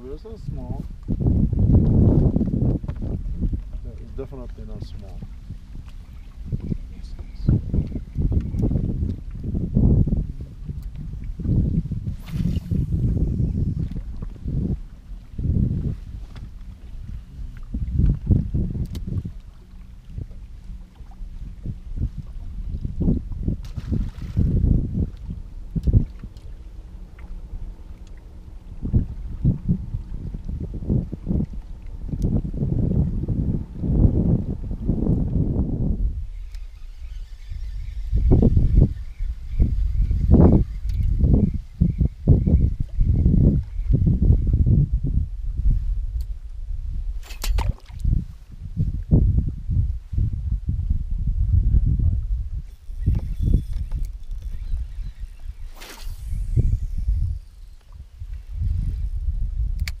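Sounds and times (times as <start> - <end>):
wind buffeting microphone: 0.0 - 60.0
faint pulsing high whine: 11.6 - 47.5, 49.2 - 60.0
fishing rod swish: 12.0 - 13.1, 52.7 - 58.0.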